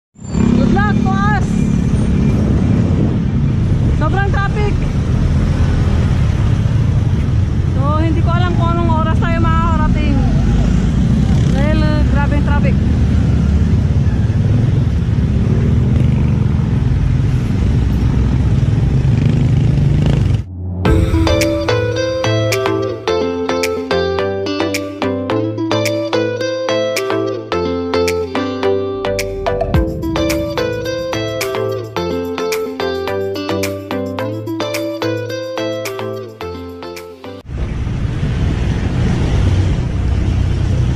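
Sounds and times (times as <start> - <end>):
motorcycle and car engines: 0.2 - 23.1, 28.9 - 36.2, 37.4 - 40.9
wind rumble on microphone: 37.5 - 40.9.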